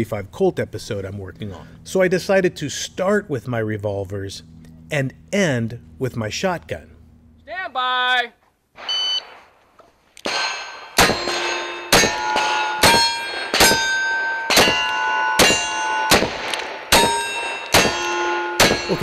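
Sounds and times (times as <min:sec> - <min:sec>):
shot timer beep: 0:08.8 - 0:09.4
revolver gunshots: 0:10.2 - 0:19.0
steel target ringing: 0:10.2 - 0:19.0.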